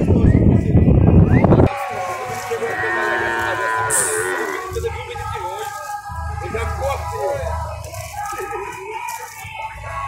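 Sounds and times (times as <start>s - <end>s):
cow mooing: 2.8s - 4.7s.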